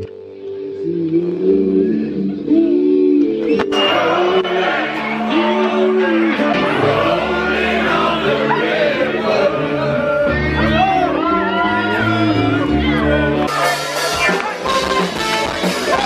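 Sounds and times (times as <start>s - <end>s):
live band music: 3.2s - 16.0s.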